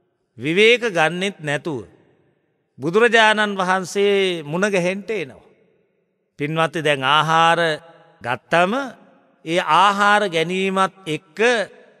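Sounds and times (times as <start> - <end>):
man chanting: 6.4 - 11.7.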